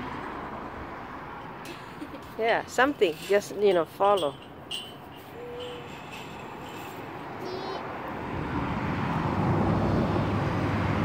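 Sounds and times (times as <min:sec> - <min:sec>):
car passing: 0:00.0 - 0:11.0.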